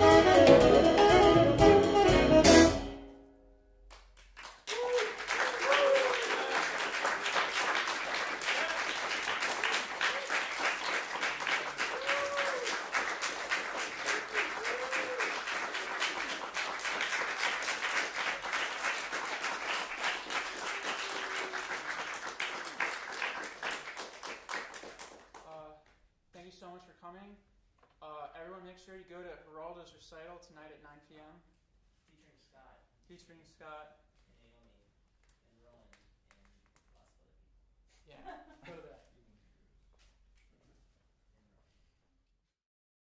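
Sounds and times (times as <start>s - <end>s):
live jazz music: 0.0s - 3.4s
audience applauding: 3.9s - 25.5s
short cheers: 4.7s - 7.0s, 8.4s - 10.7s, 11.7s - 13.0s, 13.9s - 16.3s, 20.4s - 21.9s.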